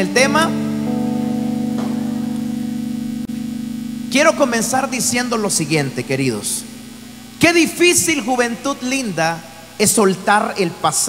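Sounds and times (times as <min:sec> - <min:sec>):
keyboard sustained chord: 0:00.0 - 0:09.8.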